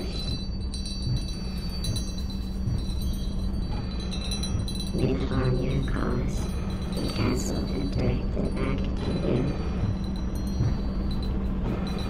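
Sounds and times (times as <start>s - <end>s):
high ringing chime tones: 0.0s - 12.0s
steady low hum: 0.0s - 12.0s.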